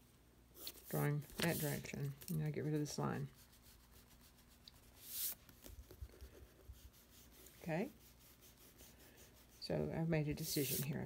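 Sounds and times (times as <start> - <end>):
pencil scratching on paper: 2.5 - 11.0.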